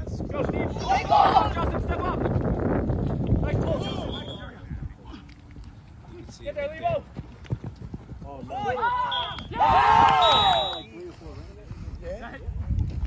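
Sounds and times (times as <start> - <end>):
people yelling: 0.7 - 1.7, 8.5 - 10.8.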